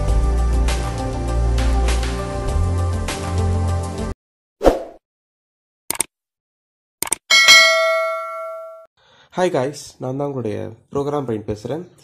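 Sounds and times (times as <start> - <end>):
bell ding: 7.3 - 8.9.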